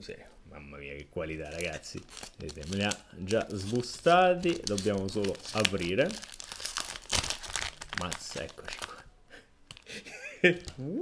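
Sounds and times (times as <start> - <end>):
foil wrapper crinkling: 1.4 - 9.0.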